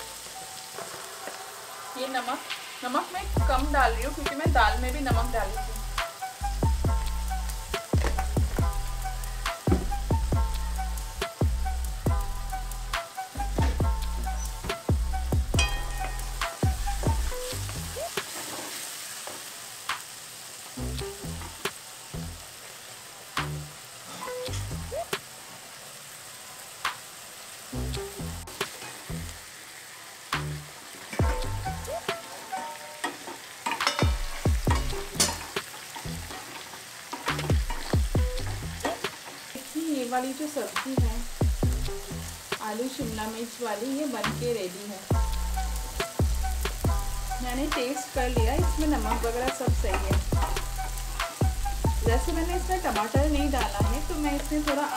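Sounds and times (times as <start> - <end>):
background music: 0.0 - 18.4, 20.7 - 22.5, 27.7 - 29.6, 30.2 - 39.3, 40.2 - 54.9
food sizzling in oil: 0.0 - 54.9
wooden spatula scraping pan: 0.7 - 1.8, 18.2 - 19.4.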